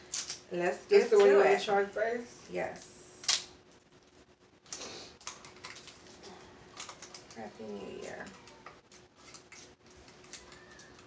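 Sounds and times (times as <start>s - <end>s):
chocolate wrappers crinkling: 4.0s - 11.0s.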